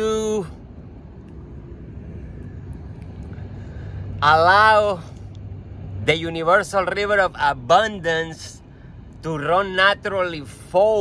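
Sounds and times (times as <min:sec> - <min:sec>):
low engine-like rumble: 0:00.0 - 0:11.0
low hum: 0:00.0 - 0:11.0.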